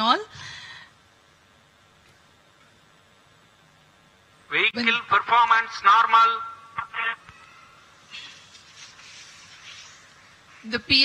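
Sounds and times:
faint background hiss: 0:00.0 - 0:11.0
announcer speaking: 0:04.5 - 0:07.2.

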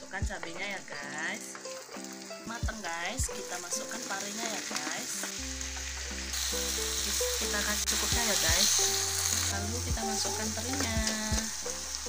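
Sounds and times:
food sizzling in hot oil: 0:00.0 - 0:12.0.

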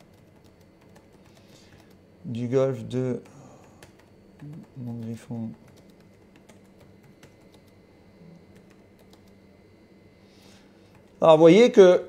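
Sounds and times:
keyboard keystroke clicks: 0:03.2 - 0:07.7.

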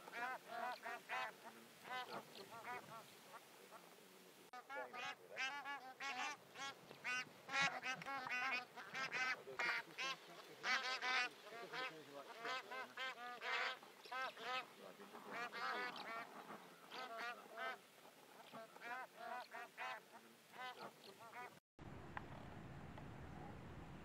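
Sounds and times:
geese honking: 0:00.0 - 0:04.0, 0:04.6 - 0:21.6.

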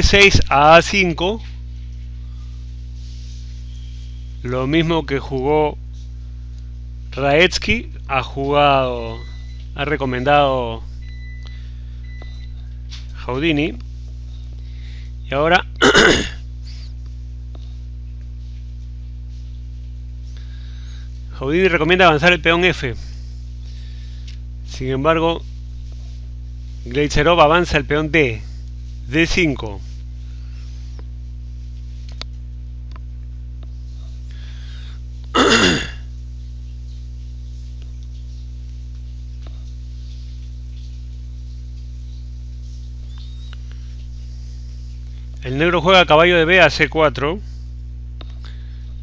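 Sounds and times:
faint high whine: 0:00.0 - 0:49.0
low electrical hum: 0:00.0 - 0:49.0
person clearing throat: 0:15.8 - 0:16.4, 0:35.4 - 0:36.1.

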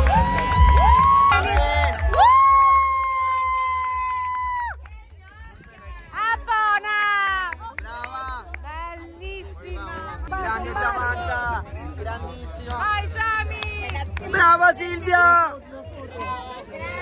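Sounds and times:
loud dance music: 0:00.0 - 0:04.6.

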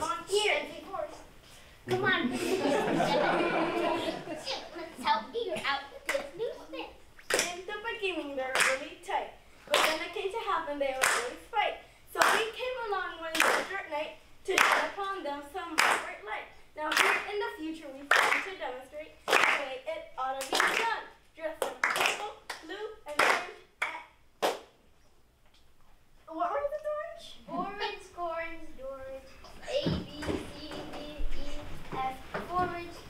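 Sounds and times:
children clapping hands: 0:07.3 - 0:07.6, 0:08.6 - 0:08.8, 0:09.7 - 0:10.1, 0:11.0 - 0:11.3, 0:12.2 - 0:12.6, 0:13.3 - 0:13.8, 0:14.6 - 0:15.0, 0:15.8 - 0:16.1, 0:16.9 - 0:17.3, 0:18.1 - 0:18.5, 0:19.3 - 0:19.6, 0:20.4 - 0:20.9, 0:21.6 - 0:24.7.

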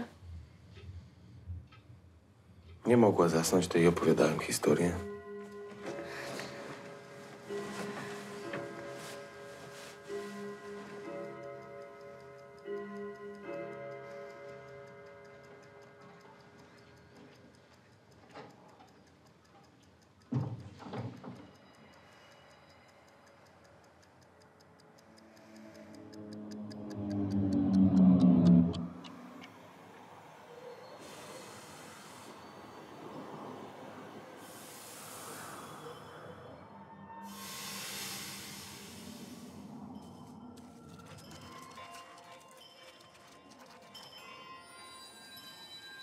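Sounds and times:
clock-like ticking: 0:02.9 - 0:30.0
low tonal swell: 0:25.1 - 0:42.7
steady hiss: 0:31.0 - 0:36.1, 0:37.3 - 0:39.9.

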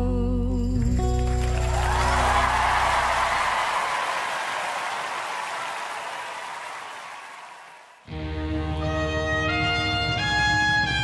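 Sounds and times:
audience applause: 0:01.0 - 0:08.1.

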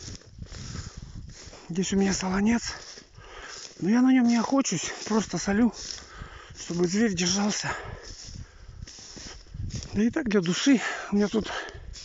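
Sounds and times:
rustling: 0:00.0 - 0:10.7
footsteps on snow: 0:00.0 - 0:12.0.

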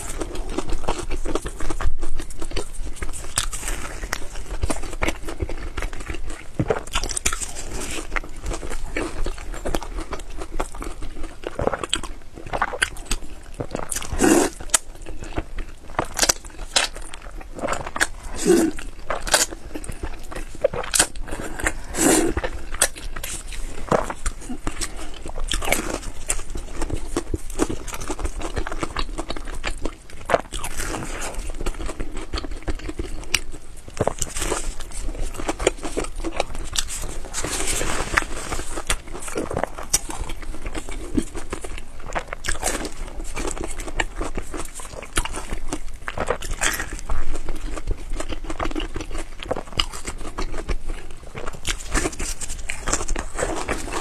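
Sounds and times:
close chewing and biting: 0:00.0 - 0:54.0.

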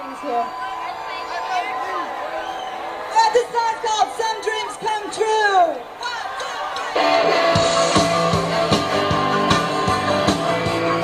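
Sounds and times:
crowd noise: 0:00.0 - 0:11.0
live rock band playing: 0:06.4 - 0:11.0.

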